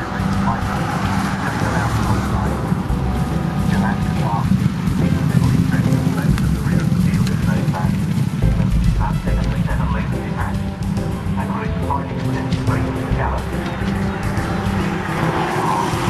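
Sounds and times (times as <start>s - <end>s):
background music: 0.0s - 16.0s
dense low rumble: 0.0s - 16.0s
horses galloping: 0.0s - 16.0s
race commentary voices: 0.0s - 16.0s.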